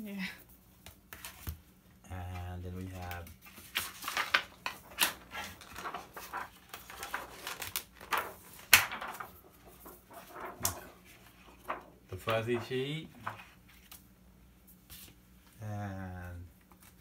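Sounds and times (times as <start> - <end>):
plastic sheets rustling and crackling: 2.3 - 14.0
plastic sheet snapping: 3.8 - 9.4, 10.3 - 10.9.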